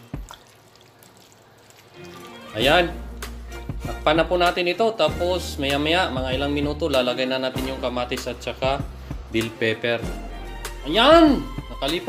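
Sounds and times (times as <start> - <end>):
liquid shifting in a pan: 0.0 - 2.6.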